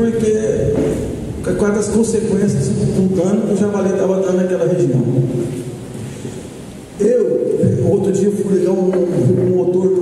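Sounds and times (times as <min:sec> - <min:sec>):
rumbling noise: 0:00.0 - 0:10.0.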